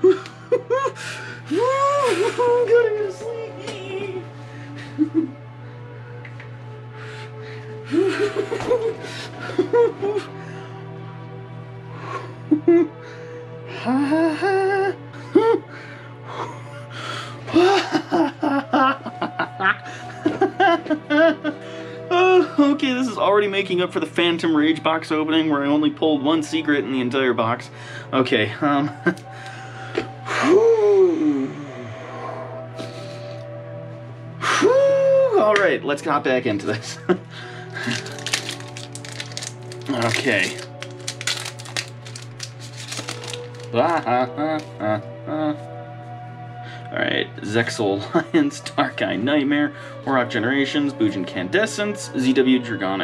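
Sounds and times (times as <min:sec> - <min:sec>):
man laughing: 0:00.0 - 0:05.4, 0:07.9 - 0:10.4, 0:12.5 - 0:13.0, 0:13.8 - 0:15.7, 0:17.5 - 0:22.9, 0:28.6 - 0:29.3, 0:36.7 - 0:38.2, 0:43.8 - 0:45.6
background music: 0:00.0 - 0:53.0
man vocalising excitedly: 0:01.5 - 0:04.3
foil wrapper crinkling and tearing: 0:37.7 - 0:44.7.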